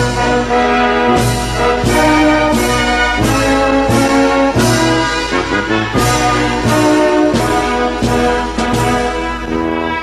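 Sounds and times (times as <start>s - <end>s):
brass processional march music: 0.0s - 10.0s.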